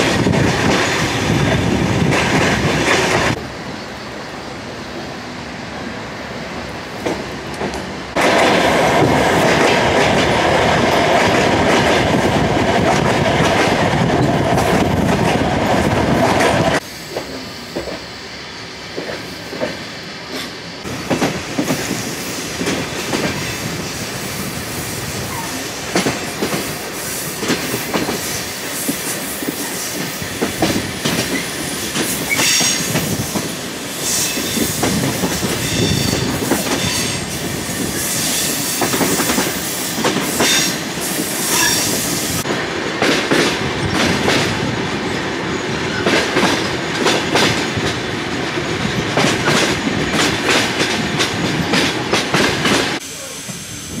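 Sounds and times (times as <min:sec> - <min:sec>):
train running on rails: 0:00.0 - 0:54.0
wheels clacking over rail joints: 0:45.9 - 0:53.0.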